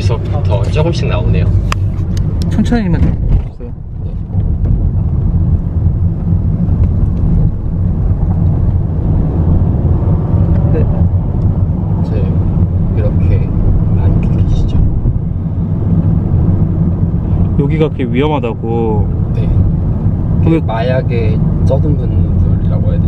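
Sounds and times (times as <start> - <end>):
car engine rumble: 0.0 - 23.0.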